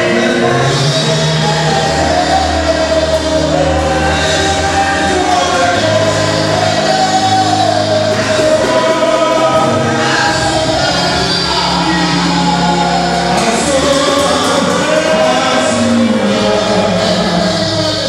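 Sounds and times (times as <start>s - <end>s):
group singing gospel song: 0.0s - 18.0s.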